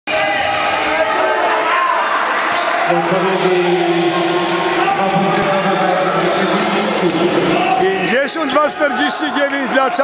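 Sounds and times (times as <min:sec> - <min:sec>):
crowd and player voices: 0:00.1 - 0:10.0.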